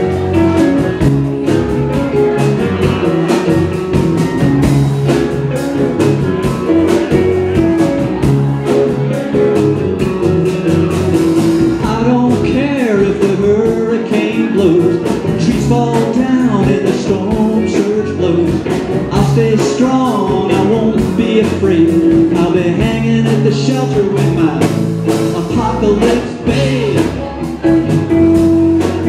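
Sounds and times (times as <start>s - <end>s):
rock band playing: 0.0s - 29.0s.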